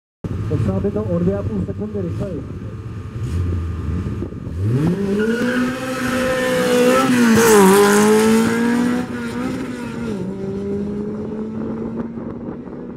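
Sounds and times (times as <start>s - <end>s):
cars accelerating hard: 3.0s - 12.9s.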